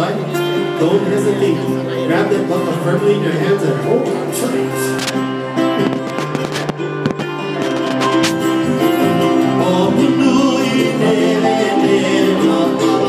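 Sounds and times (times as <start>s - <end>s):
double bass: 0.0s - 13.0s
electric guitar: 0.0s - 13.0s
strummed acoustic guitar: 0.0s - 13.0s.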